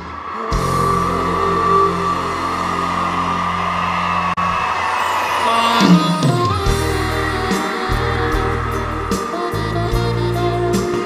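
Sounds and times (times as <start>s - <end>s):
live band sustained chord: 0.0s - 11.0s.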